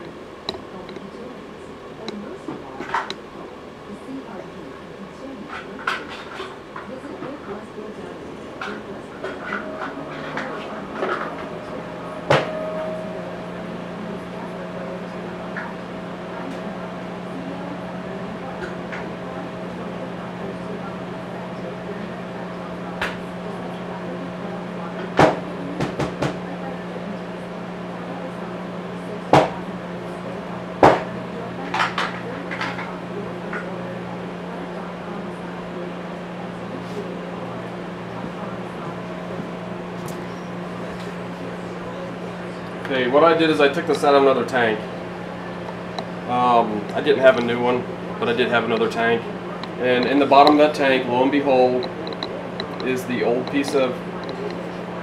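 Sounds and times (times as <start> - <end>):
low hum: 0.0 - 55.0.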